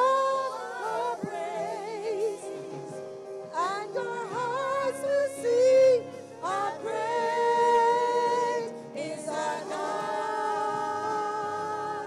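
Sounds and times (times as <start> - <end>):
worship team singing: 0.0 - 12.0.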